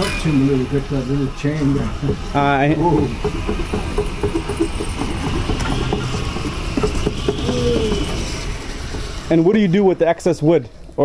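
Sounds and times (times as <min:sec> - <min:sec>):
sawmill drive humming: 0:00.0 - 0:11.0.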